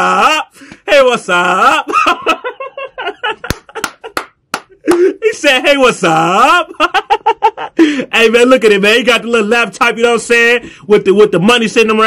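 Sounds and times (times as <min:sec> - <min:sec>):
man laughing: 0:01.3 - 0:08.1.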